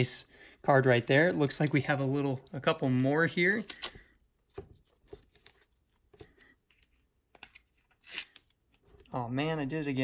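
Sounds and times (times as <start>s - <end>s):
tape ripping: 3.5s - 4.0s, 7.4s - 9.0s
masking tape peeling and tearing: 7.4s - 9.0s.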